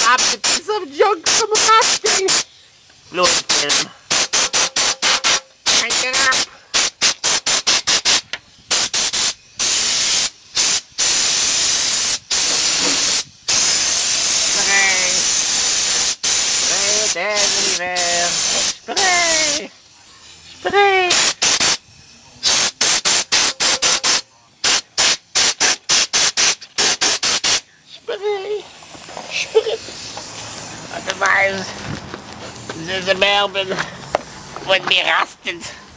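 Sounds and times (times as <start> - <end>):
spray can hissing in bursts: 0.0 - 27.7, 28.4 - 31.7, 32.3 - 35.3.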